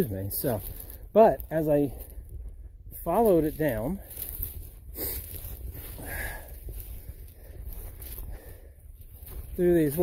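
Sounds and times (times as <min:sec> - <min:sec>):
footsteps on forest trail: 0:00.0 - 0:10.0
rustling of brush: 0:00.0 - 0:10.0.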